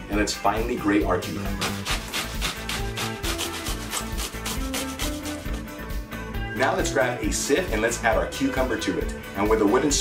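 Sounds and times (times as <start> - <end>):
cucumber grated on metal grater: 1.6 - 5.6.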